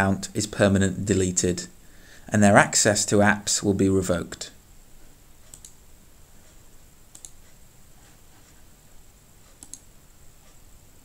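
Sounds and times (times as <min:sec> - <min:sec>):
faint steady hiss: 0:00.0 - 0:11.0
computer mouse clicks: 0:05.4 - 0:05.8, 0:06.4 - 0:07.6, 0:09.4 - 0:10.6.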